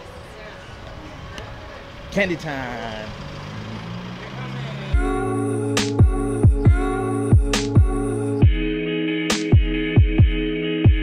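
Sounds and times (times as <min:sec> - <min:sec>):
faint voices: 0:00.0 - 0:05.1
street background noise: 0:00.0 - 0:08.4.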